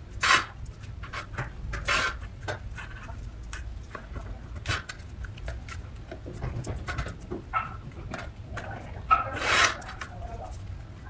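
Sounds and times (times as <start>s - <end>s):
rasping scrape: 0.1s - 3.2s, 8.6s - 10.6s.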